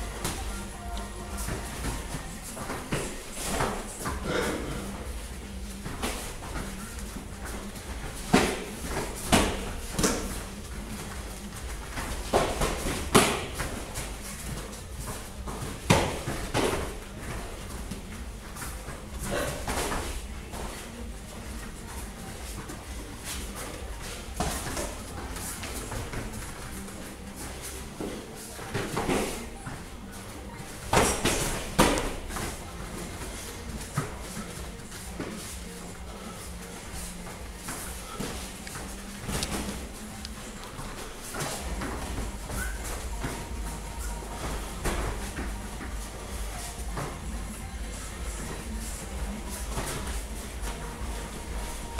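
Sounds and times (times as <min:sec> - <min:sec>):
punches and kicks smacking: 0:08.2 - 0:10.4, 0:12.0 - 0:14.1, 0:15.5 - 0:17.5.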